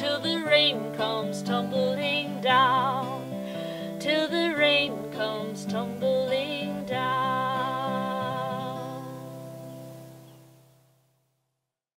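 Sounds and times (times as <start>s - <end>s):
acoustic guitar strummed chord: 0.0s - 10.8s.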